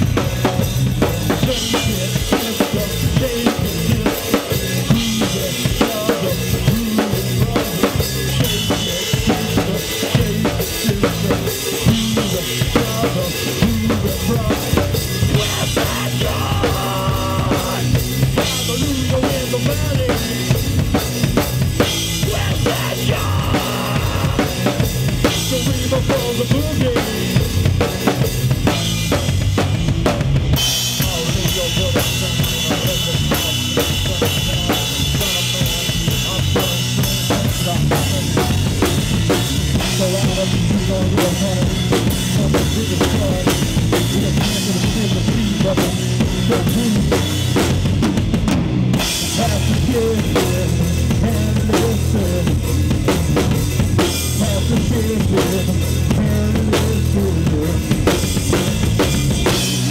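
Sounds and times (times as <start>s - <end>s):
fast drum kit: 0.0s - 59.9s
heavy metal band playing: 0.0s - 59.9s.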